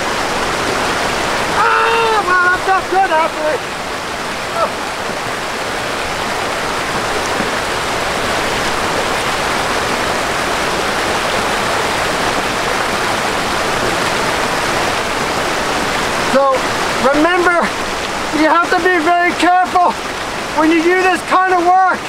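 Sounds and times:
stream rushing over rocks: 0:00.0 - 0:22.0
man's voice: 0:01.5 - 0:03.6, 0:16.3 - 0:20.0, 0:20.6 - 0:22.0.

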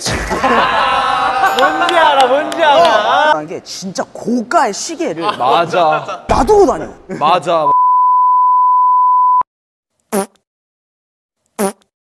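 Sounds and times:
electronic censor beep: 0:07.7 - 0:09.5.

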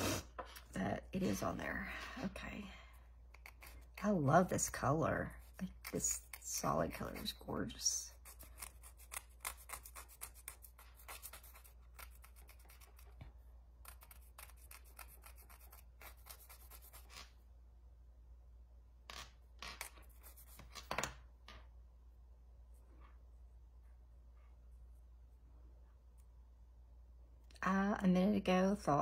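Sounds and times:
nail file rasping: 0:03.3 - 0:04.0, 0:08.1 - 0:13.2, 0:13.8 - 0:17.3.

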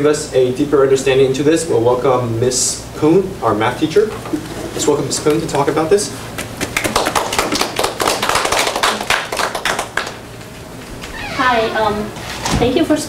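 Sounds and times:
audience applauding: 0:06.5 - 0:10.2.

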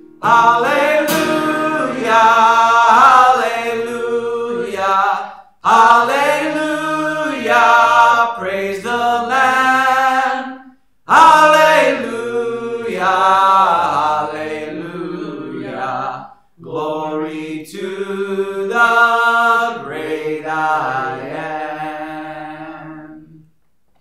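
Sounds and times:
acoustic guitar: 0:00.0 - 0:15.8.

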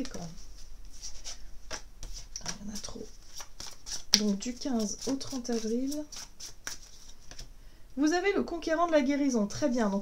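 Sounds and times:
cards clicking and sliding: 0:03.3 - 0:04.3.

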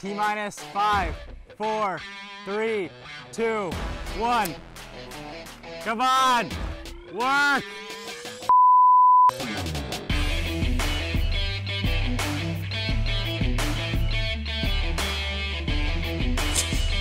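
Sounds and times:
rock music: 0:00.0 - 0:08.5, 0:09.3 - 0:17.0
censor bleep: 0:08.5 - 0:09.4.

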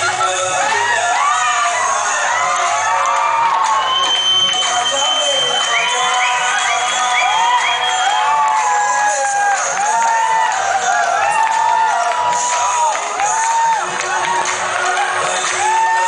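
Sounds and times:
crowd cheering and whooping: 0:00.0 - 0:16.0
dance music over speakers: 0:00.0 - 0:16.0.

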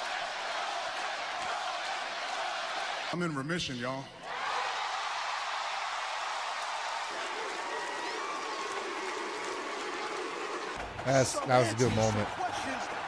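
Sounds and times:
crowd applauding and cheering: 0:00.0 - 0:03.2, 0:04.2 - 0:13.0.

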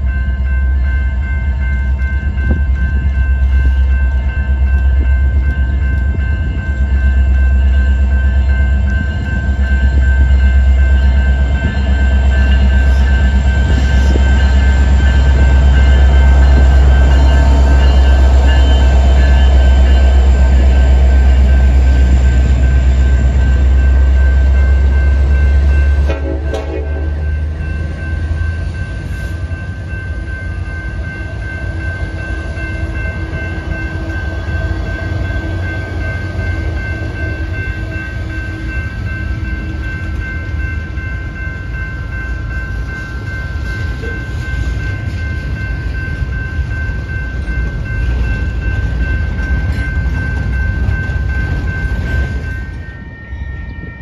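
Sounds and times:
diesel locomotive engines rumbling: 0:00.0 - 0:54.0
high-pitched ringing tone: 0:00.0 - 0:54.0.

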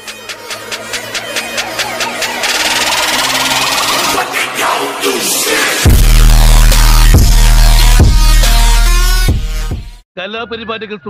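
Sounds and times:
rapid electronic buzzing: 0:05.6 - 0:09.8.

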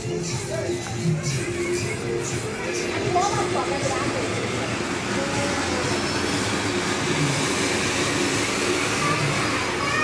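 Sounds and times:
firework fountain hissing: 0:00.0 - 0:10.0.

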